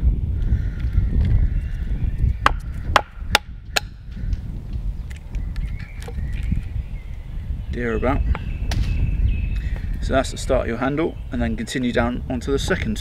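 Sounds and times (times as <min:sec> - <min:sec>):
wood splitting: 0:02.4 - 0:03.9.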